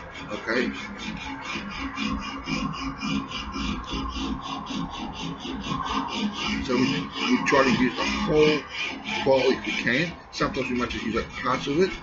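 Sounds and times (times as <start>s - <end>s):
file rasping on steel: 0.0s - 12.0s.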